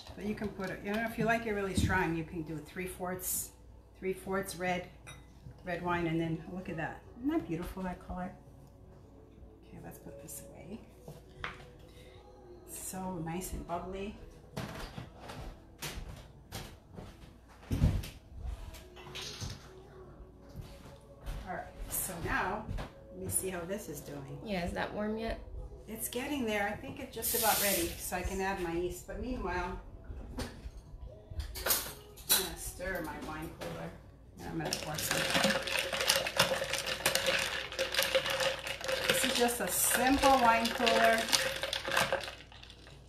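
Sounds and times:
kitchen items knocking: 34.6s - 42.9s
ice cubes clinking in glass pitcher: 34.7s - 43.0s.

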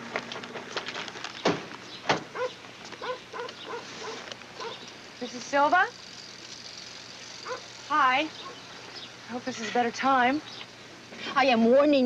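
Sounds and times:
dog yipping: 2.4s - 4.8s, 7.4s - 7.7s.

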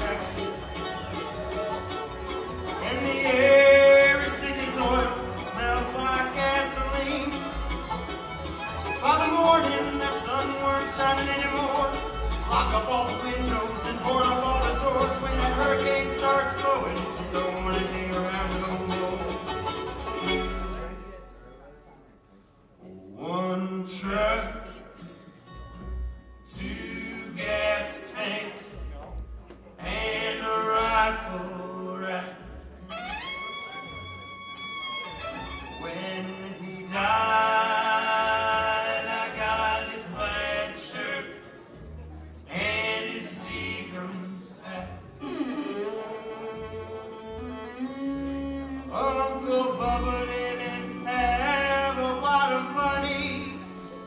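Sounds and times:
fiddle sliding notes: 0.0s - 21.2s, 32.9s - 37.9s, 45.2s - 54.0s
low bass notes: 0.0s - 21.5s, 41.8s - 54.0s
bluegrass band playing: 0.0s - 54.0s.

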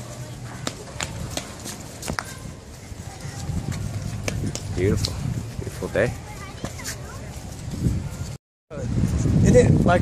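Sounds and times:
footsteps on brick pavement: 0.0s - 8.4s.

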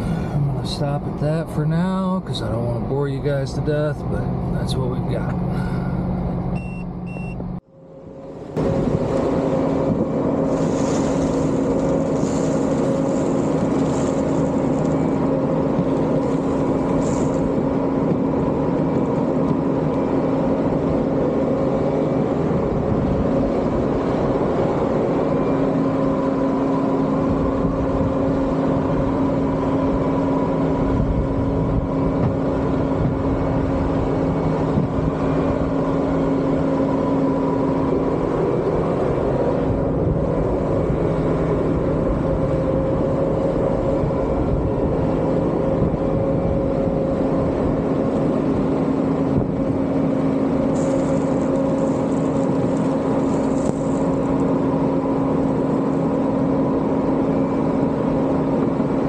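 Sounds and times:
vehicle engine humming: 0.0s - 59.0s.

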